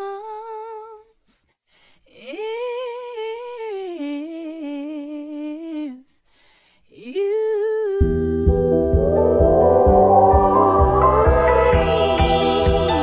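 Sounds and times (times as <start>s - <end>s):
high voice singing: 8.0s - 13.0s
instrumental music with low beat: 8.0s - 13.0s.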